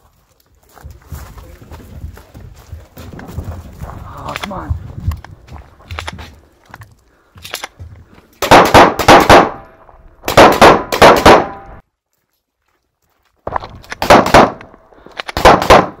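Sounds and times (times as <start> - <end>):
rapid pistol shots: 8.4 - 9.6, 10.3 - 11.6, 14.0 - 14.7, 15.3 - 16.0.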